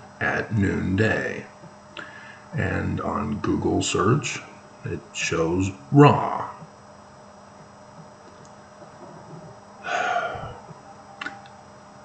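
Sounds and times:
man sighing: 9.8s - 10.7s.

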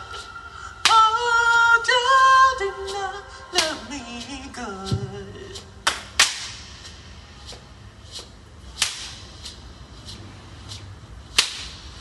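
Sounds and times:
loud percussion crack: 5.9s - 7.5s.

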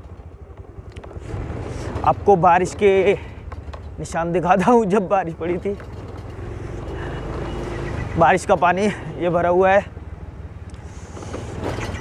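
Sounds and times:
road and wind noise: 0.0s - 12.0s
scooter engine hum: 0.0s - 12.0s.

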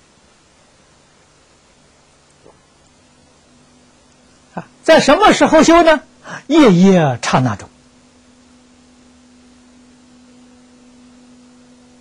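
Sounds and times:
faint steady hum: 0.0s - 12.0s
light hiss: 0.0s - 12.0s.

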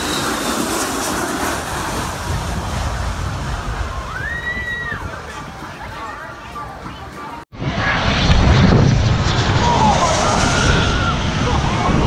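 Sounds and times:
jet engine noise: 0.0s - 12.0s
crowd chatter: 2.3s - 7.8s.

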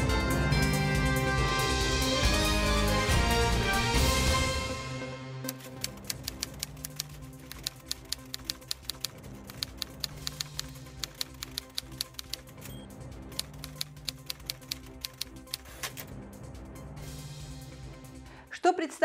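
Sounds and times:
quiet background music: 0.0s - 19.0s
typewriter keys clacking: 5.5s - 12.7s, 13.3s - 16.1s.

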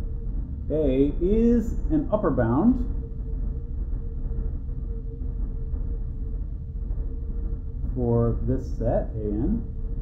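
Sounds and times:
faint steady hum: 0.0s - 10.0s
low rumble: 0.0s - 10.0s.

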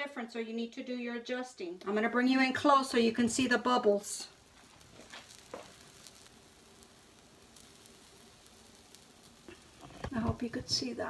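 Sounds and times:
pancake batter sizzling: 1.8s - 11.0s.

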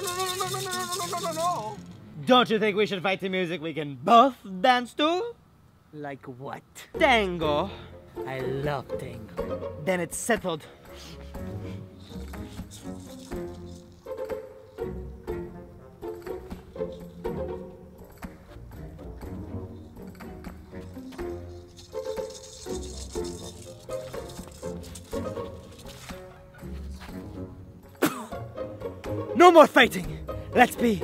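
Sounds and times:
tango music: 8.9s - 9.9s.

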